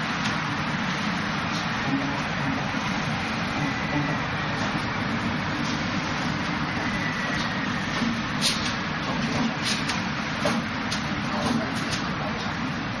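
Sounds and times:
steady background rush: 0.0s - 13.0s.

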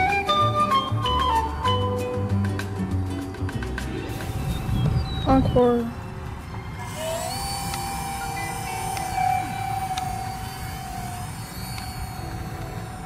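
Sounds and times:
electric ducted fan whine: 0.0s - 13.0s.

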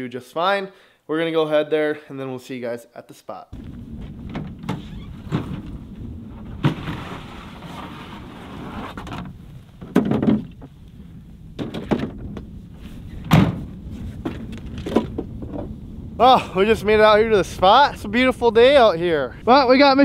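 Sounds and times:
gear clunks and thuds: 3.6s - 7.7s, 9.0s - 10.8s, 11.6s - 12.5s, 13.1s - 15.7s
steady low rumble: 3.6s - 9.8s, 10.5s - 19.8s
plastic sled scraping: 3.6s - 10.8s, 11.6s - 15.8s.

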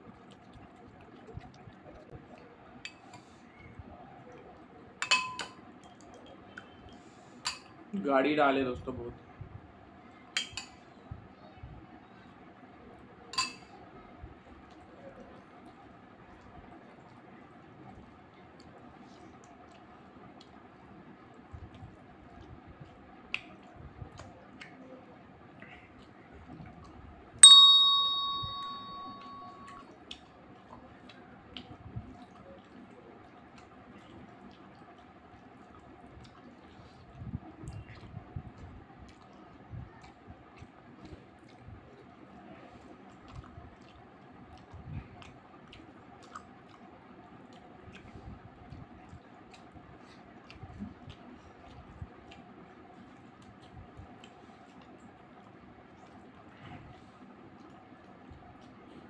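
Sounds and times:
spoon clinking glass bowl: 5.0s - 5.6s, 13.4s - 13.7s, 27.4s - 29.8s
bright bell ding: 27.4s - 29.8s
wet chewing: 30.0s - 59.0s.

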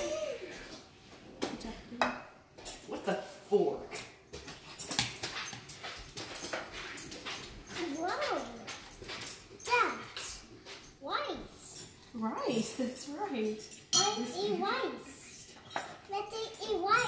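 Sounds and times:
spoon clinking on ceramic bowl: 13.6s - 14.5s.

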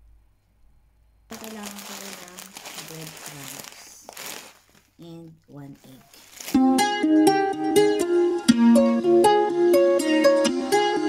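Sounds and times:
plastic packaging crinkling: 1.3s - 6.9s.

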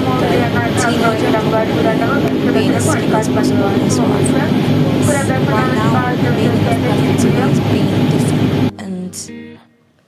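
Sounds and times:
propeller aircraft engine drone: 0.0s - 8.7s
person talking: 0.0s - 9.4s.

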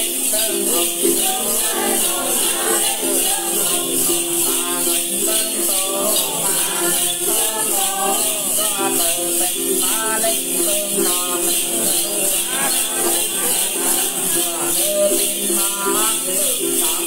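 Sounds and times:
shaken jingle of small bells: 0.0s - 17.0s
woman and man singing: 0.0s - 17.0s.

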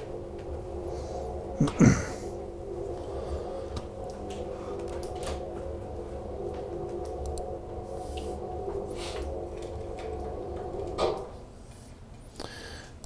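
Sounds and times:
electrical hum: 0.0s - 13.0s
faint clicks and taps: 6.5s - 7.5s.

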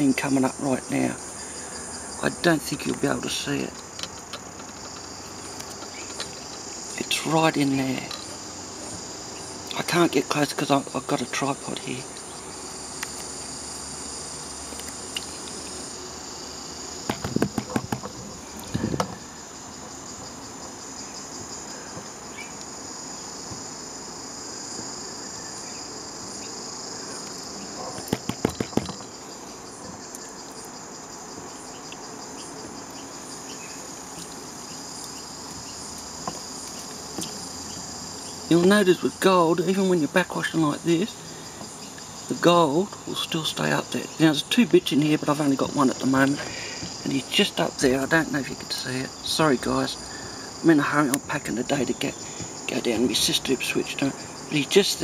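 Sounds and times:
high-pitched insect chorus: 0.0s - 55.0s
bursts of clicks and knocks: 17.0s - 19.2s, 27.9s - 29.2s.

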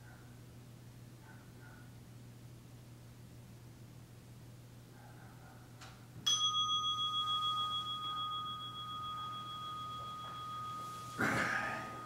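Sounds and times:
meditation bell ringing: 6.3s - 12.0s.

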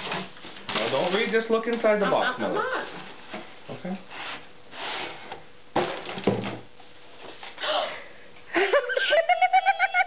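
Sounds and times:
cardboard rustling and scraping: 0.0s - 1.8s, 2.8s - 7.6s.

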